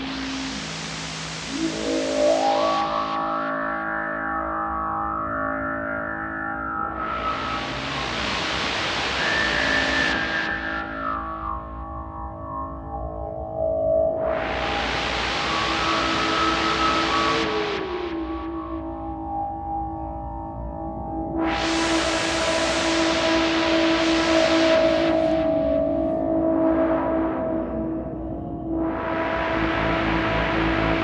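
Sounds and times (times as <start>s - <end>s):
synthesizer hiss: 0.0s - 12.4s, 14.1s - 19.1s, 21.4s - 31.0s
synthesizer tones gliding upward: 6.9s - 10.6s.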